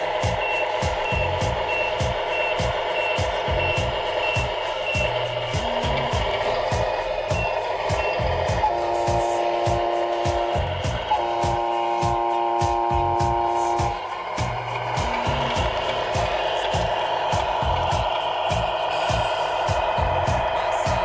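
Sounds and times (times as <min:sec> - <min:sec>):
rhythmic beat with low thumps: 0:00.0 - 0:21.0
electronic air horn: 0:07.3 - 0:15.7.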